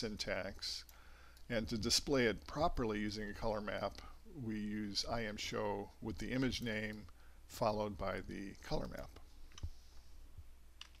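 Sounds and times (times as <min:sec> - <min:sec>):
steady low hum: 0:00.0 - 0:11.0
computer mouse clicks: 0:10.8 - 0:11.0.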